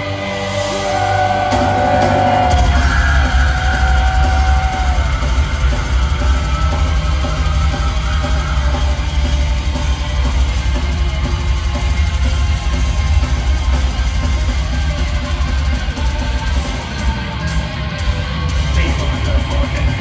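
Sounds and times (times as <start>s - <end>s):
heavy drums and bass: 0.0s - 20.0s
metal band playing live: 0.0s - 20.0s.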